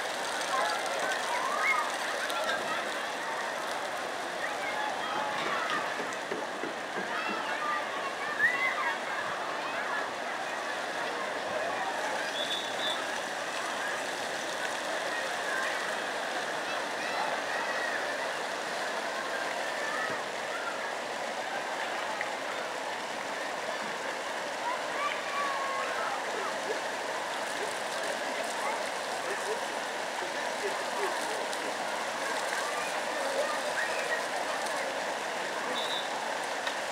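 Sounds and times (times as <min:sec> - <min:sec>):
fountain water rushing and splashing: 0:00.0 - 0:36.9.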